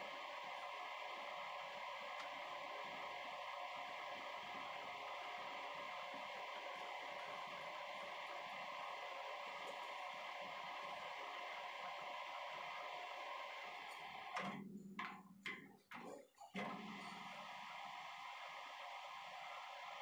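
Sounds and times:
metal lathe running: 0.1s - 14.4s.

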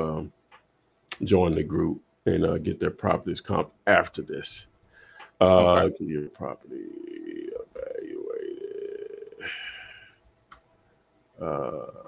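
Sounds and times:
man humming: 5.4s - 10.1s, 11.4s - 12.0s.

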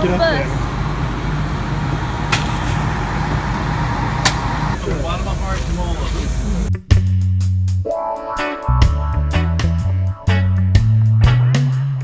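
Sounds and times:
coach engine idling: 0.0s - 6.7s
music with bass and drums: 4.8s - 12.0s.

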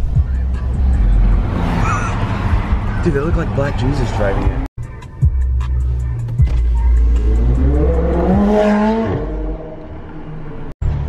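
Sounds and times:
music playing: 0.0s - 9.2s.

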